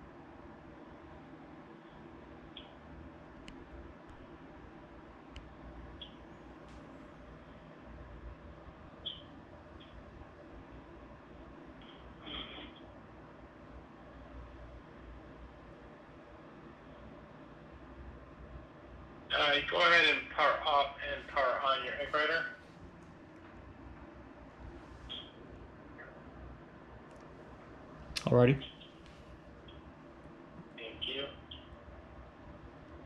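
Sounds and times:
faint background hum: 0.0 - 33.0
soft clicks: 2.5 - 2.8.

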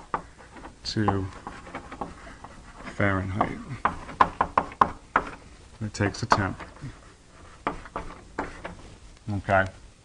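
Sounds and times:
chalk tapping on blackboard: 0.0 - 8.9.

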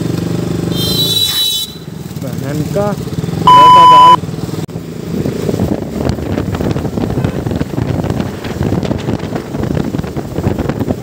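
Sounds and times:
motorcycle engine running: 0.0 - 11.0
high censor bleep: 3.5 - 4.2.

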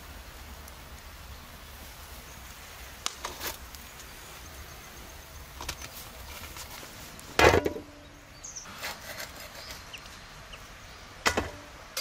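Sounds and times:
faint knocks and scrapes: 8.6 - 10.2.

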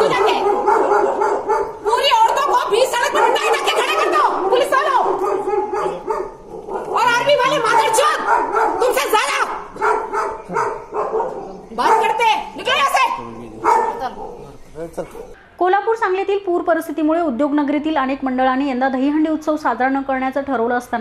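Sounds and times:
woman shouting: 0.0 - 0.4, 1.9 - 5.1, 7.0 - 9.7, 12.0 - 13.2
raised voices arguing: 0.0 - 15.4.

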